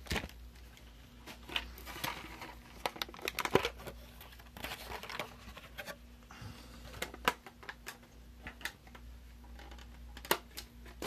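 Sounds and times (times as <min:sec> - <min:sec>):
packaging rustling and crinkling: 0:00.0 - 0:06.0.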